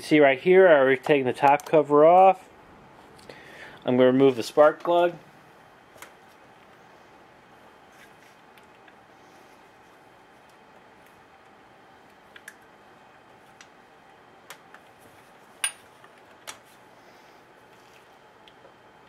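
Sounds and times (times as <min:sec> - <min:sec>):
faint room hiss: 0:00.0 - 0:19.0.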